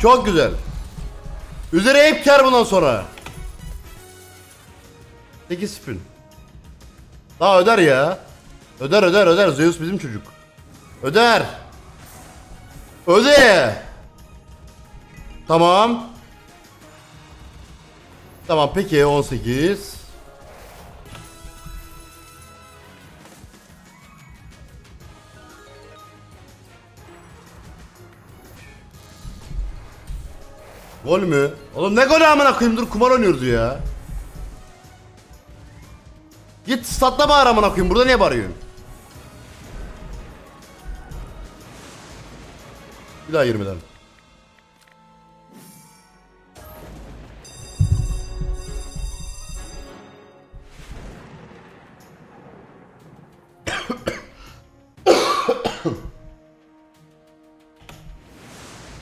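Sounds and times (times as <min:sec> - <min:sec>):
slot game background music: 0:00.0 - 0:59.0
tumbling symbol sound effects: 0:47.0 - 0:49.9
deep boom: 0:47.8 - 0:49.8
man coughing: 0:53.7 - 0:56.2.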